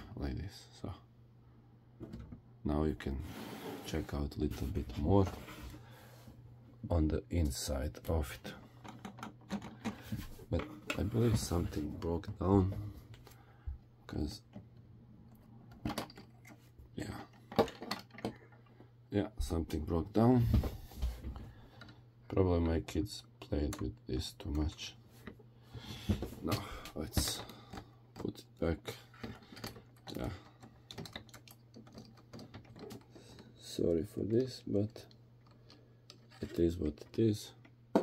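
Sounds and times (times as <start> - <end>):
plastic bricks clicking: 29.2 - 33.4.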